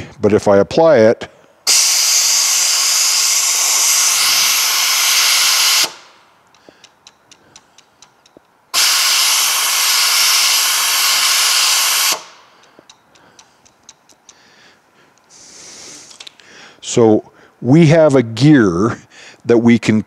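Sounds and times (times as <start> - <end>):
compressed air hissing: 1.7 - 7.8, 8.7 - 13.6, 14.4 - 16.7
faint light ticks: 12.6 - 14.4.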